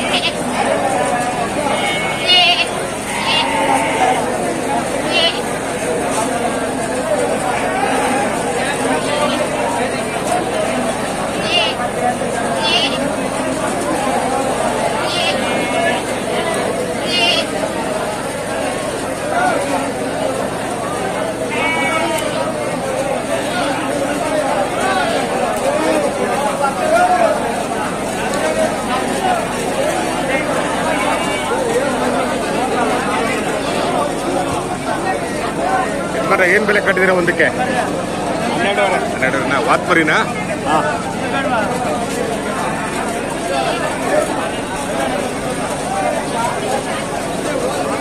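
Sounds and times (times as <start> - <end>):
high-pitched bleat: 0.0 - 0.5, 1.7 - 4.4, 5.0 - 5.5, 11.4 - 11.8, 12.6 - 13.1, 15.0 - 16.0, 17.0 - 17.6, 21.4 - 22.5
crowd chatter: 0.0 - 48.0.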